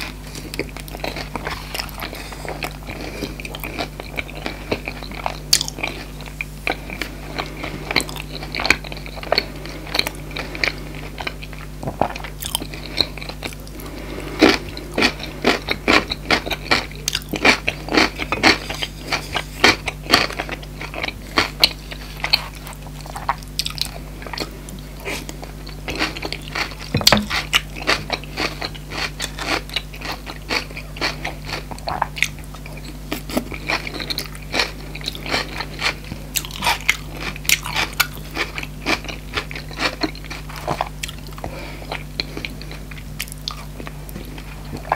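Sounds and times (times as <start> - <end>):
close-miked chewing: 0.0 - 44.9
steady low hum: 0.0 - 44.9.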